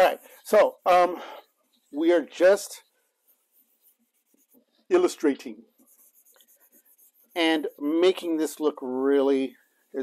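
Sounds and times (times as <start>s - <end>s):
man talking: 0.0s - 2.9s, 4.9s - 5.7s, 7.4s - 10.0s
pencil scratching on paper: 0.0s - 8.7s.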